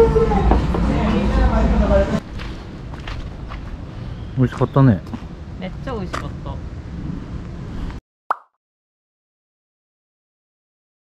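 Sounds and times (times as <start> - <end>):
street ambience: 0.0 - 8.0
sharp pop sound effect: 8.3 - 8.6.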